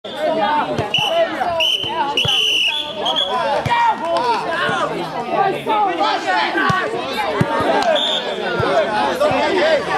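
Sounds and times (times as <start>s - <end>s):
girls calling and chattering: 0.1s - 9.9s
ball bouncing thuds: 8.5s - 9.5s.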